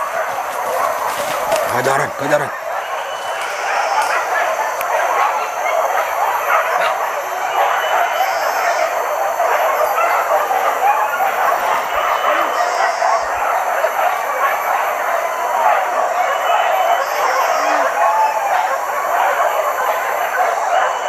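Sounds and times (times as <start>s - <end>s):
dogs barking and yelping: 0.0s - 21.0s
forest insects ringing: 0.0s - 21.0s.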